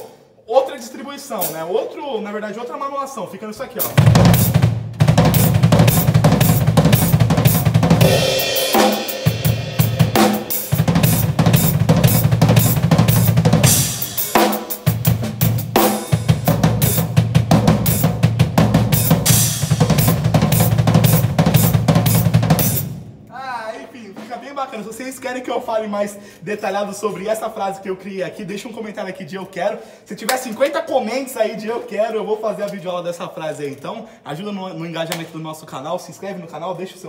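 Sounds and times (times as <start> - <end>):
drum kit playing fast runs: 3.8 - 23.2
cymbal crashes: 8.0 - 11.4, 13.6 - 15.0.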